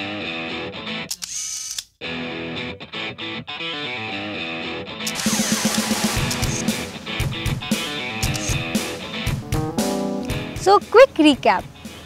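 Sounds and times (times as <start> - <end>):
camera shutter click: 1.1 - 1.9, 5.1 - 6.6, 8.2 - 8.6
guitar music: 2.1 - 5.1, 6.3 - 11.4.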